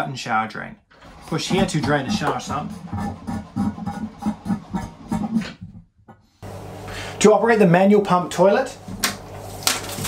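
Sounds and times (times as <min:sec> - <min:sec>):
drain pump pulsing: 0:00.9 - 0:05.6.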